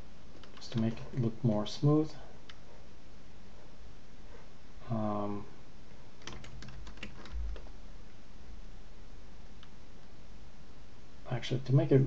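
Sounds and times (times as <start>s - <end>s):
keyboard keys clicking: 0.4s - 1.3s, 6.2s - 7.7s.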